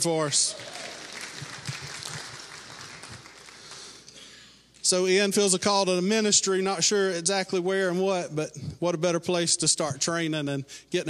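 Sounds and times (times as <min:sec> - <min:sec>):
congregation applauding: 0:00.0 - 0:04.1.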